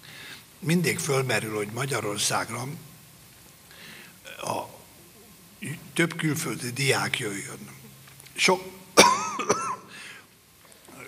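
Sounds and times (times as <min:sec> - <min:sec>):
person coughing: 0:09.0 - 0:10.0.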